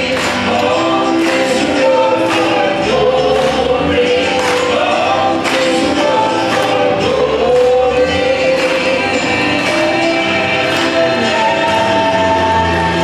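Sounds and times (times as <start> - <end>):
accompaniment with steady beat: 0.0 - 13.0
vocal quartet singing in harmony: 0.0 - 13.0.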